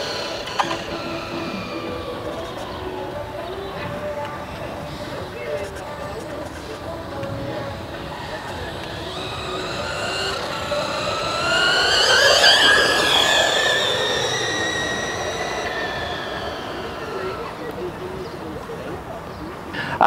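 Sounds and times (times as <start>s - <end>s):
electric toy car motor whine: 0.0s - 19.1s.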